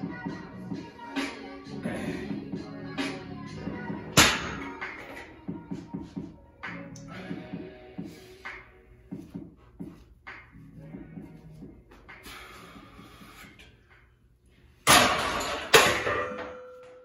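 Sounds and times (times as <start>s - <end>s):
background music with a beat: 0.0s - 12.3s.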